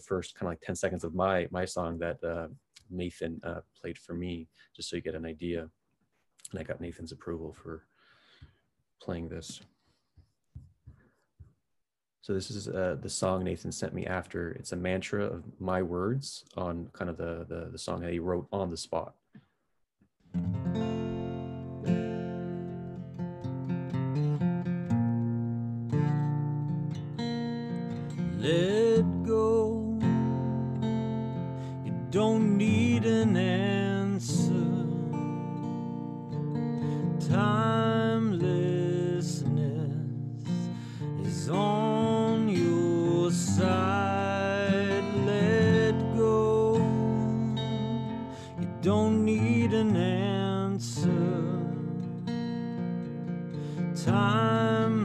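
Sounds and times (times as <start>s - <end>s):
acoustic guitar strumming: 20.4s - 55.0s
person singing: 28.3s - 30.8s, 31.8s - 36.0s, 37.2s - 52.2s, 54.0s - 55.0s.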